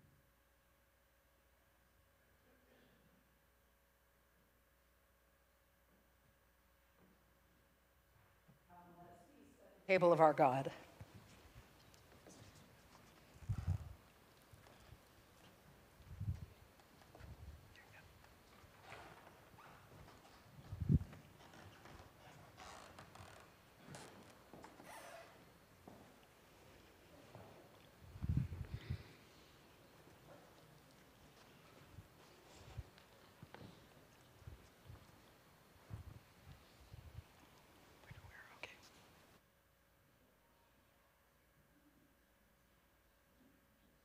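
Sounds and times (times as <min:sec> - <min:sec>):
soft footsteps: 0:10.8 - 0:38.0
person speaking softly: 0:17.7 - 0:18.2, 0:38.0 - 0:39.1.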